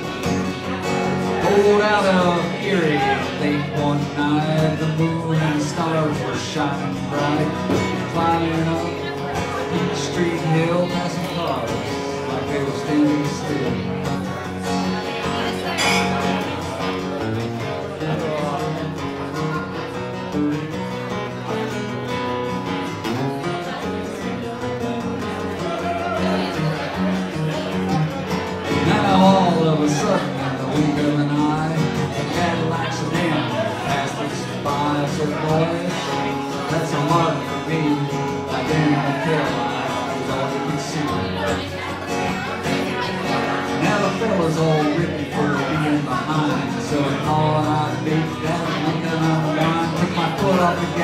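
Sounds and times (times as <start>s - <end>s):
acoustic guitar playing: 0.0s - 51.0s.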